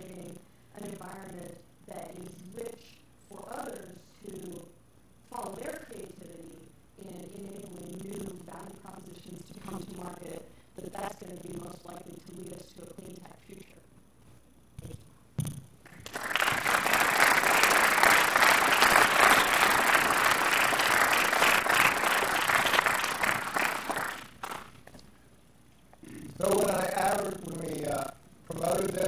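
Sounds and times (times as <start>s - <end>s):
audience applauding: 15.9s - 24.9s.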